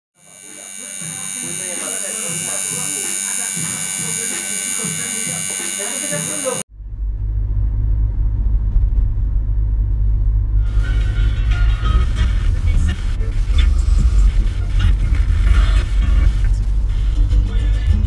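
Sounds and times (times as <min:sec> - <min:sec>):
tattoo machine buzzing: 0:00.2 - 0:06.7
low rumble inside car: 0:06.7 - 0:18.0.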